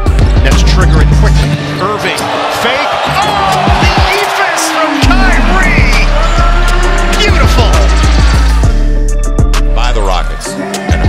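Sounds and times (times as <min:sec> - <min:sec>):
background music: 0:00.0 - 0:11.0
game noise: 0:04.7 - 0:06.3.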